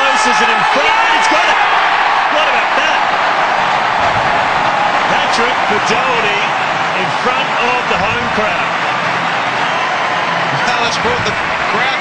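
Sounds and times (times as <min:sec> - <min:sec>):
people shouting: 0:00.0 - 0:10.6
stadium crowd cheering: 0:00.0 - 0:12.0.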